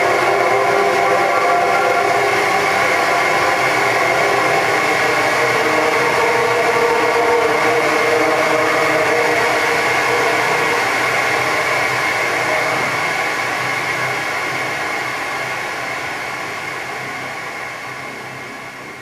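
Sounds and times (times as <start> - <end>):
synthesizer drone: 0.0 - 18.8.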